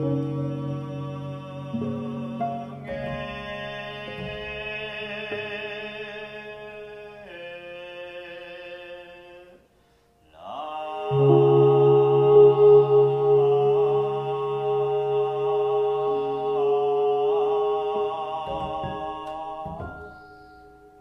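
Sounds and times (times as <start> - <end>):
man chanting long notes: 10.4 - 20.0
low drone: 10.6 - 18.5
ambient background music: 11.1 - 21.0.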